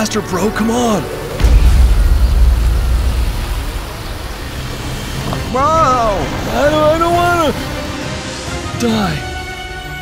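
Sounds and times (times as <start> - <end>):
road noise: 1.0 - 10.0
car engine rumble: 1.4 - 7.6.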